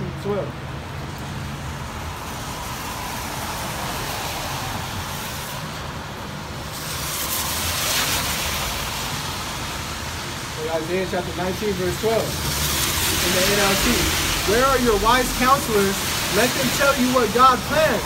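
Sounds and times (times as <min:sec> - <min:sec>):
road traffic tyre noise: 0:00.0 - 0:18.0
tyres hissing on wet pavement: 0:00.8 - 0:18.0.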